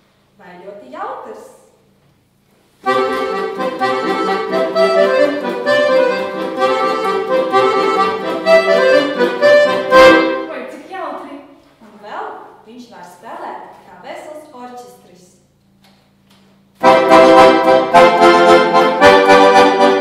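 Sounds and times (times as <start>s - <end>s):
piano accordion melody: 2.8s - 10.7s, 16.8s - 20.0s.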